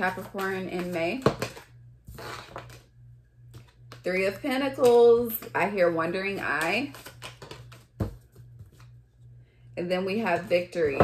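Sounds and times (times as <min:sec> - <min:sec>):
cards being shuffled: 0:00.0 - 0:02.9, 0:03.5 - 0:04.0, 0:06.2 - 0:09.0.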